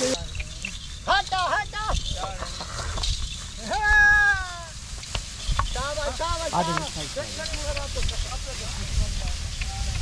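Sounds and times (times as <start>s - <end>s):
man calling to oxen: 1.0s - 2.7s, 3.5s - 4.9s, 5.6s - 9.2s.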